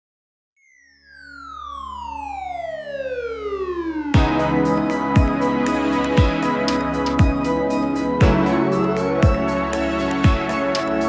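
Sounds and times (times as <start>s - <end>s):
synthesized tone sliding down: 0.6s - 11.0s.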